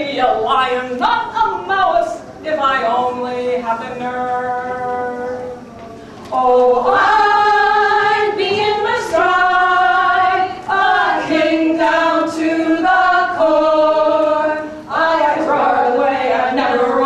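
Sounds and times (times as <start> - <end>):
voices singing in harmony: 4.0 - 17.0.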